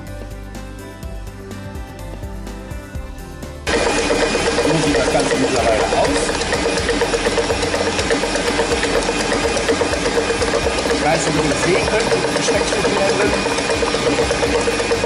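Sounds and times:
stand mixer motor hum: 3.7s - 15.0s.

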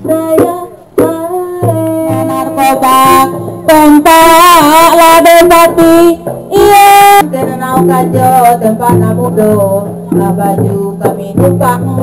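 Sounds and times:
instrumental accompaniment: 0.0s - 12.0s.

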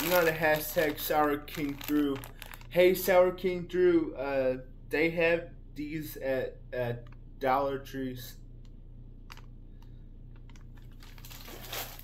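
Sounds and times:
plastic bags crackling: 0.0s - 3.1s, 10.6s - 12.0s
low steady hum: 0.0s - 12.0s.

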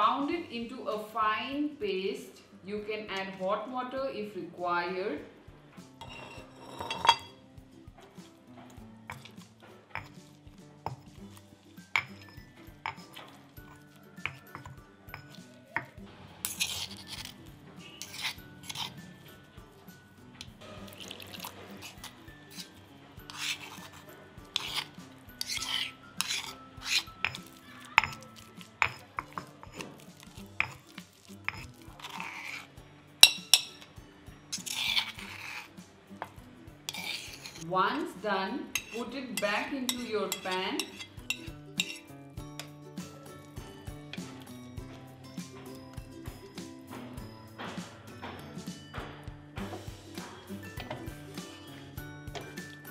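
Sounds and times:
soft background music: 0.0s - 52.9s
spoon scraping mortar: 6.0s - 7.4s, 8.1s - 19.5s, 20.4s - 33.9s, 34.5s - 46.6s, 49.6s - 52.9s
pestle knocking on stone mortar: 10.8s - 11.2s, 11.9s - 17.2s, 23.3s - 32.4s.

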